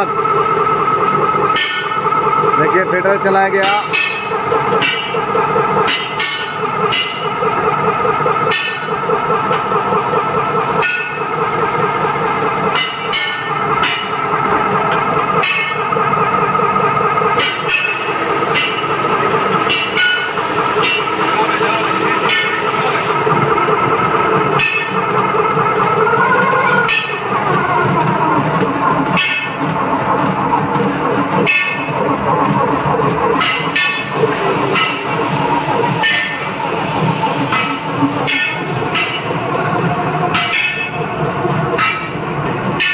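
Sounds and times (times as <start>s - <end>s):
machine whirring: 0.0s - 42.9s
sharp machine clacks: 0.0s - 42.9s.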